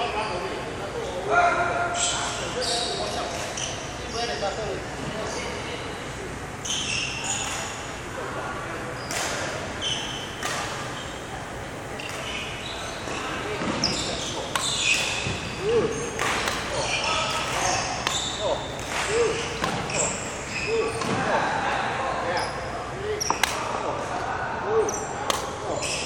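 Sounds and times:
racket hitting shuttlecock: 10.4 - 10.9, 13.6 - 20.2, 23.2 - 23.7, 25.2 - 25.6.

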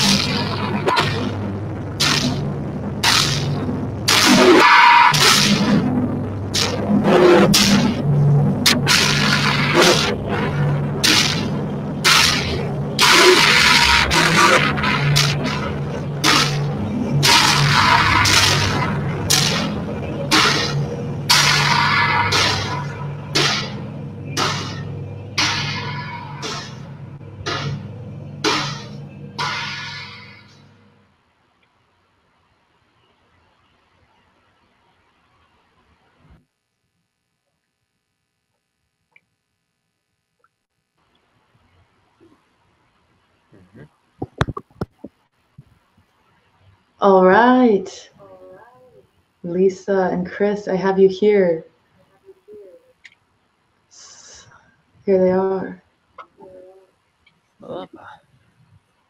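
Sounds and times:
electronic noise bursts: 0.0 - 31.1
low steady drone: 0.0 - 31.2, 53.9 - 56.9.

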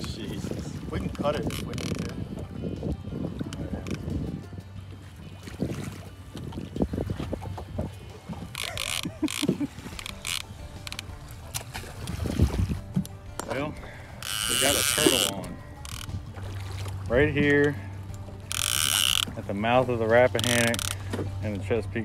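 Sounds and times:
wind on microphone: 0.0 - 13.2
water lapping against boat hull: 0.0 - 22.0.

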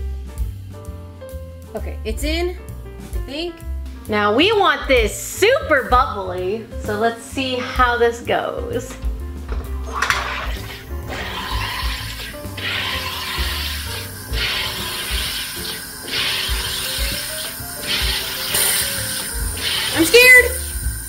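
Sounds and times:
carbonator hissing bursts: 9.8 - 21.0.

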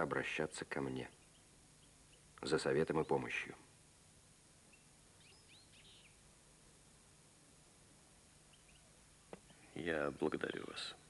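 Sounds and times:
faint hiss: 0.0 - 11.0
high bird chirps: 4.7 - 6.2, 8.5 - 8.9.

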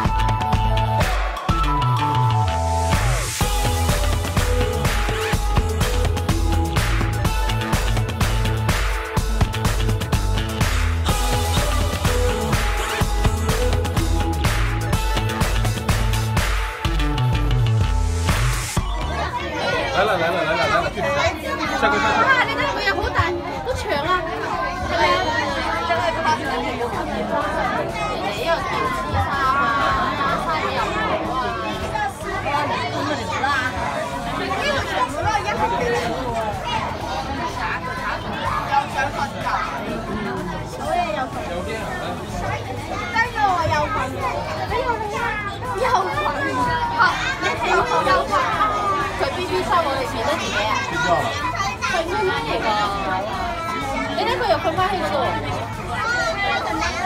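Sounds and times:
children talking and calling out: 0.0 - 57.0
overlapping chatter: 0.0 - 57.0.

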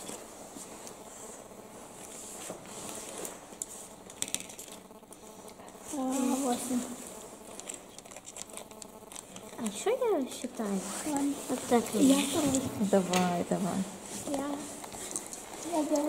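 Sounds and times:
game pieces rustling and clicking: 2.8 - 5.8, 7.4 - 9.8, 14.2 - 16.0.

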